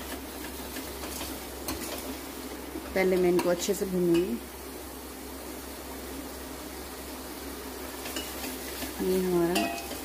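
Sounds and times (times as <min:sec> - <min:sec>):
soft sizzle: 0:00.0 - 0:10.0.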